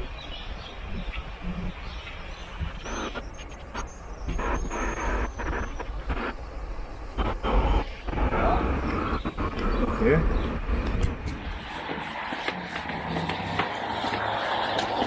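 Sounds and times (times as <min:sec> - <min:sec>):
traffic rumble: 0:00.0 - 0:15.0
voices of passers-by: 0:08.3 - 0:15.0.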